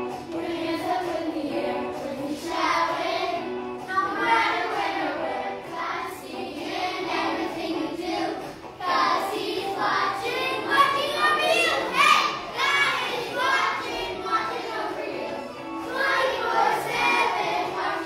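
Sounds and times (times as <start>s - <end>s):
children singing together: 0.0s - 18.0s.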